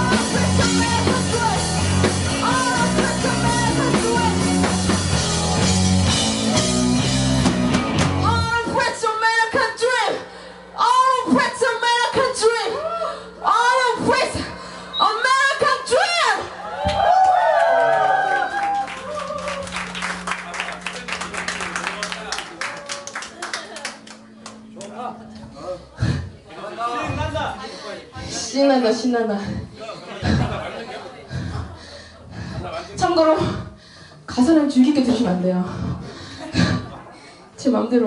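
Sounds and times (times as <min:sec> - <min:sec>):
lone voice singing: 0:00.0 - 0:04.7
live rock band playing: 0:00.0 - 0:08.8, 0:19.1 - 0:26.2
audience clapping: 0:16.8 - 0:25.0.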